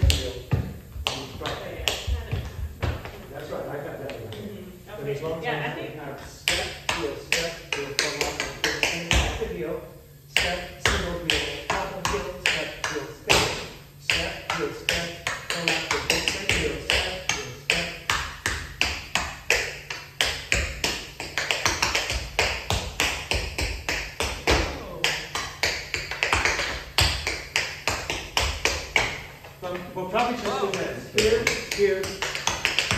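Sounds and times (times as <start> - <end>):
tap shoes on wooden floor: 0.0 - 3.3, 25.4 - 32.9.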